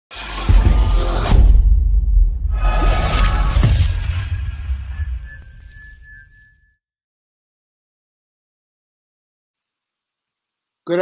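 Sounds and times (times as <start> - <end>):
shattering crackling effect: 2.5 - 5.4
sharp hit with ringing tones: 2.6 - 6.7.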